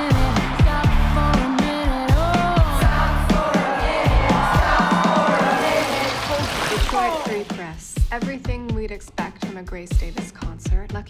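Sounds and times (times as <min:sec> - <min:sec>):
crowd noise: 0:00.0 - 0:07.6.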